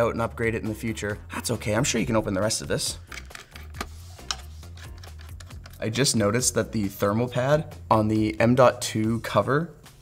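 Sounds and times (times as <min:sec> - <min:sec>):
screwdriver clicking on metal cover: 0:03.1 - 0:05.8.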